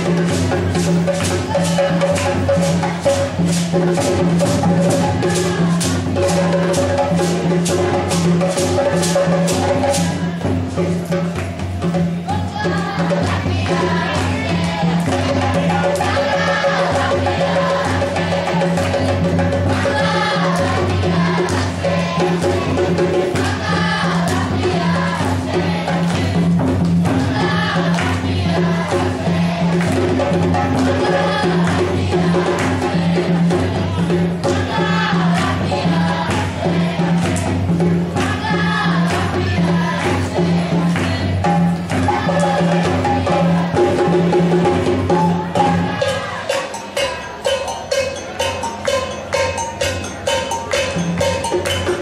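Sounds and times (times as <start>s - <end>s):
drums beating: 0.0s - 52.0s
group singing: 0.0s - 52.0s
sharp drum strikes: 0.0s - 52.0s.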